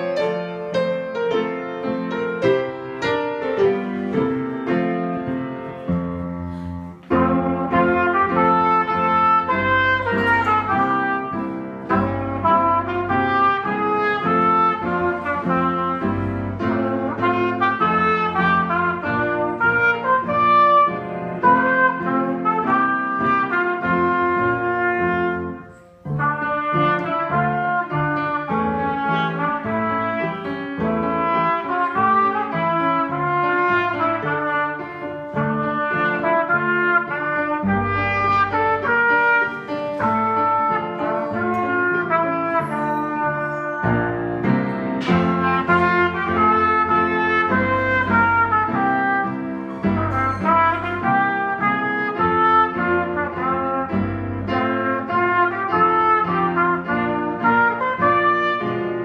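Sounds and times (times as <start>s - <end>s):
piano accompaniment: 0.0s - 59.0s
trumpet playing march: 0.0s - 59.0s.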